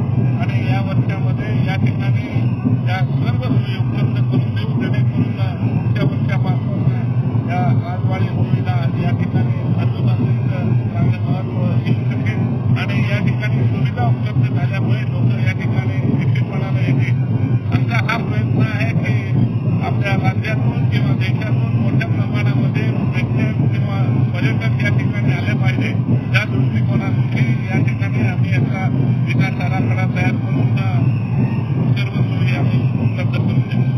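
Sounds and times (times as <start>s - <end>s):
loud crowd noise: 0.0s - 33.9s
low drone: 0.0s - 33.9s
man speaking into microphones: 0.0s - 33.9s.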